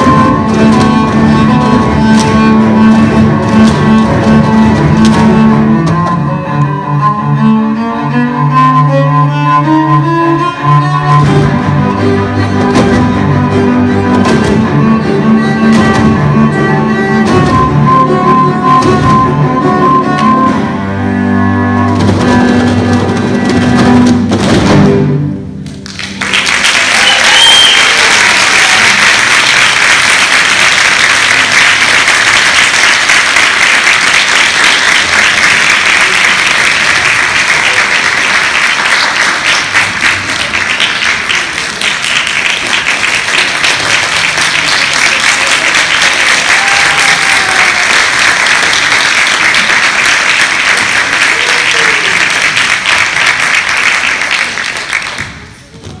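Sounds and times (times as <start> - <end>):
audience applauding: 25.7 - 55.6
audience cheering: 26.2 - 41.7, 42.3 - 55.2.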